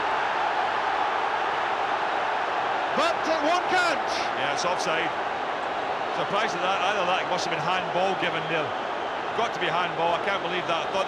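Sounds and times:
stadium crowd cheering: 0:00.0 - 0:11.0.

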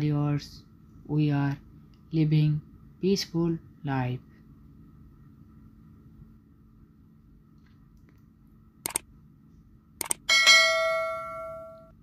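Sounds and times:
quick clicks: 0:08.8 - 0:09.0, 0:10.0 - 0:10.3
bell ding: 0:10.3 - 0:12.0.

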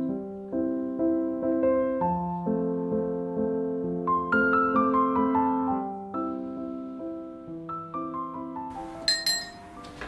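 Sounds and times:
soft piano music: 0:00.0 - 0:10.0
ceramic mug clinks: 0:09.0 - 0:09.7.

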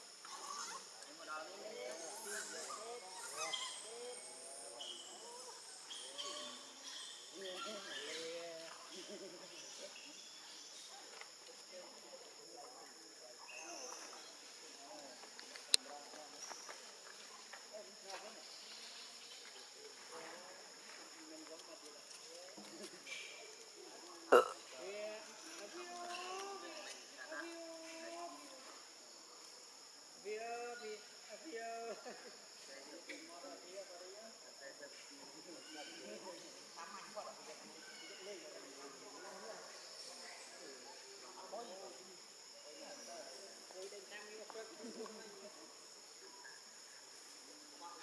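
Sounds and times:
insects buzzing: 0:00.0 - 0:48.0
faint voices: 0:11.0 - 0:29.1
loud grunt: 0:24.3 - 0:24.6.

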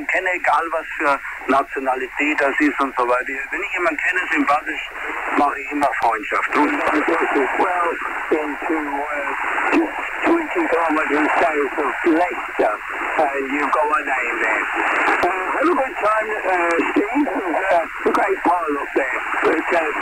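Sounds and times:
radio hiss: 0:00.0 - 0:20.0
thin radio speech: 0:00.0 - 0:20.0.

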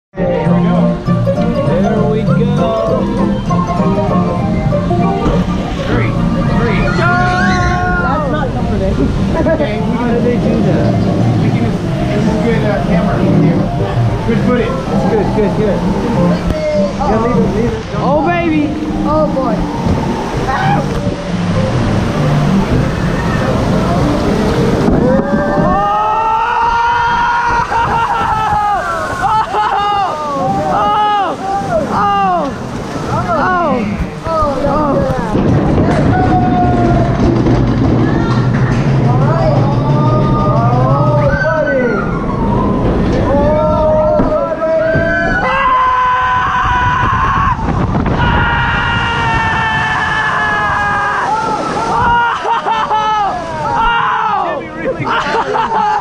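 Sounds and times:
rushing water: 0:00.2 - 0:56.0
wind on microphone: 0:01.6 - 0:54.0.

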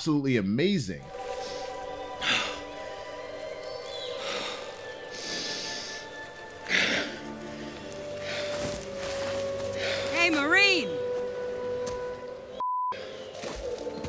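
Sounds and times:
soft film score music: 0:00.2 - 0:14.0.

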